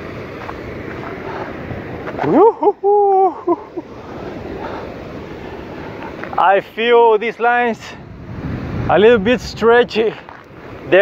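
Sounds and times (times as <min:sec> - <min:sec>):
wind on microphone: 0:07.8 - 0:11.0.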